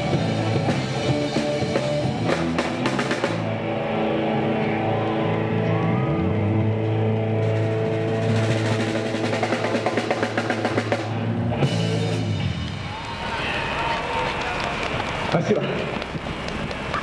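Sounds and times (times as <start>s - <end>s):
drums and cymbals: 0.0s - 3.6s, 7.3s - 13.8s
bass guitar: 0.0s - 17.0s
electric guitars: 0.0s - 17.0s.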